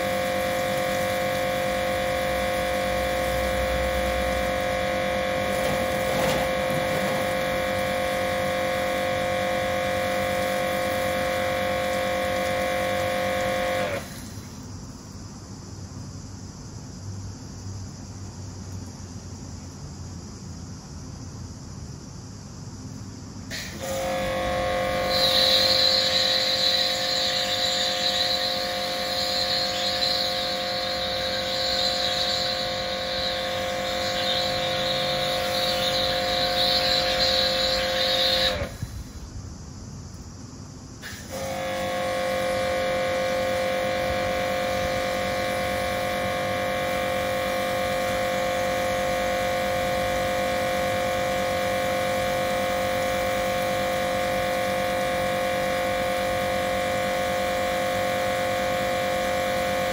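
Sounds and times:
foam spray hissing: 0.0s - 14.6s, 23.5s - 39.3s
pressure washer motor whine: 0.0s - 14.7s, 23.5s - 39.3s, 41.0s - 59.9s.

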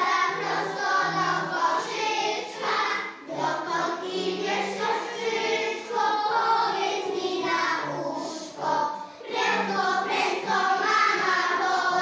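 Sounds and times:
children singing in unison: 0.0s - 12.0s.

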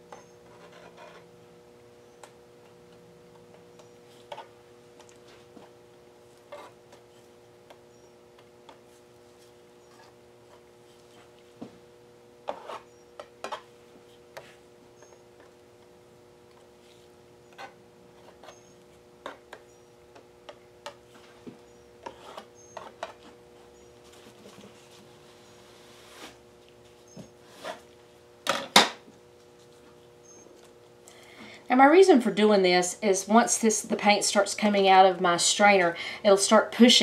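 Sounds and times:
faint steady hum: 0.0s - 37.0s
paint spreader tapping and scraping: 12.4s - 15.6s, 16.5s - 23.4s.

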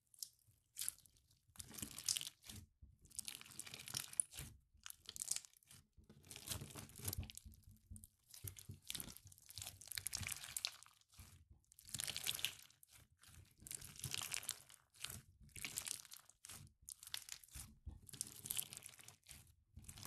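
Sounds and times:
crunchy slime squelches: 0.0s - 20.0s.

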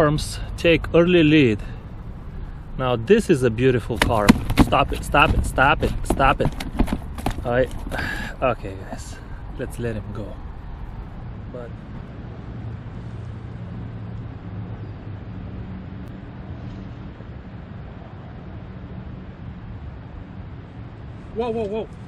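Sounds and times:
engine drone: 0.0s - 22.0s
low rumble of road traffic: 0.0s - 22.0s.

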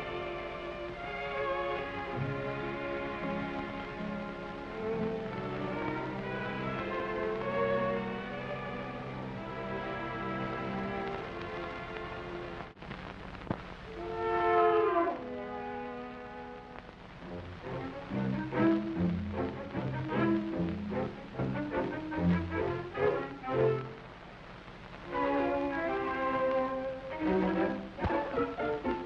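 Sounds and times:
film score music: 0.0s - 12.8s, 13.9s - 24.2s, 25.0s - 29.0s.

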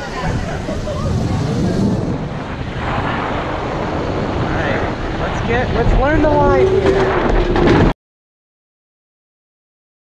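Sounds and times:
electric go-kart driving: 0.0s - 2.4s.

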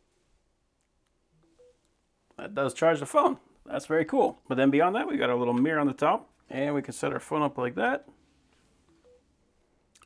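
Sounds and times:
phone charging chime: 1.4s - 1.8s, 8.9s - 9.3s.

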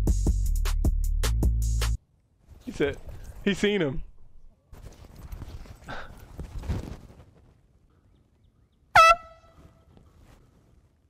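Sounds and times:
air horn blast: 9.0s - 9.9s.

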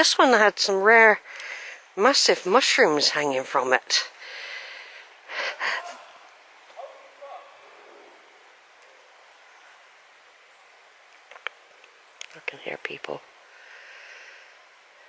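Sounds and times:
steady soft hiss: 0.0s - 15.0s.

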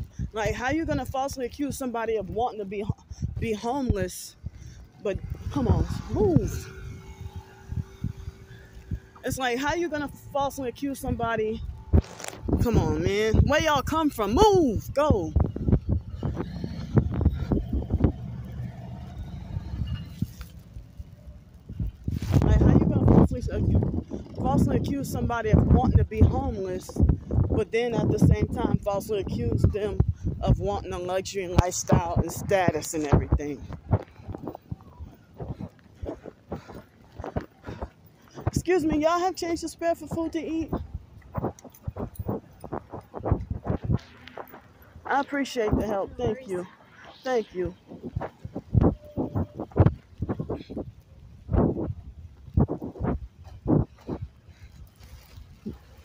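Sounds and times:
traffic hum: 0.0s - 56.0s
soft low thumps: 2.8s - 46.7s, 47.7s - 55.8s
footsteps on pavement: 8.5s - 27.6s, 30.9s - 46.7s, 47.6s - 56.0s.

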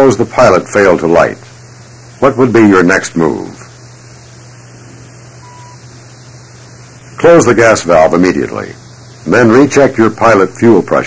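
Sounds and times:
steady hiss: 0.0s - 11.0s
low hum: 3.2s - 7.3s
short beep: 5.4s - 5.9s.

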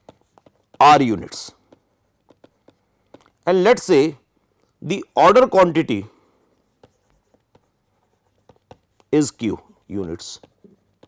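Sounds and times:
stylus tapping on pen tablet: 0.0s - 3.4s, 6.7s - 9.2s, 9.9s - 11.0s.

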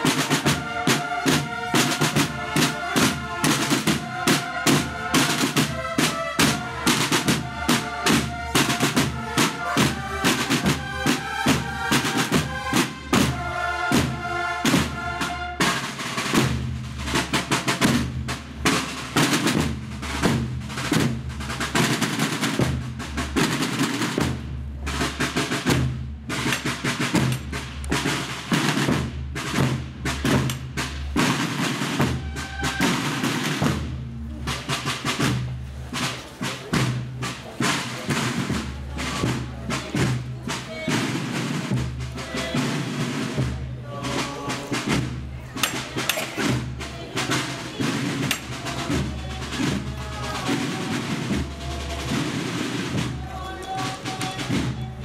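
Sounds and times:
marching procession drums: 0.0s - 55.0s.

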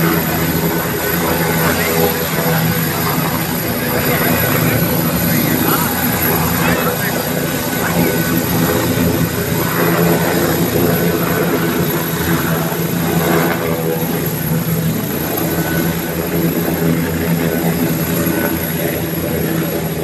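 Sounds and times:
helicopter rotor drone: 0.0s - 20.0s.

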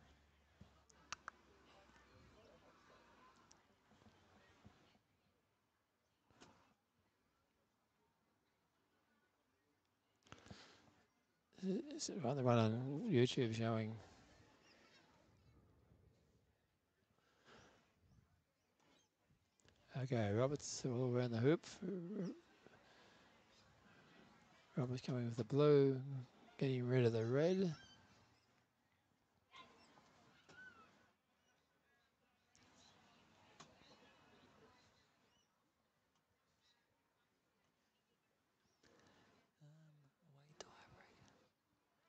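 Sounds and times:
faint whispered speech: 0.0s - 42.0s.

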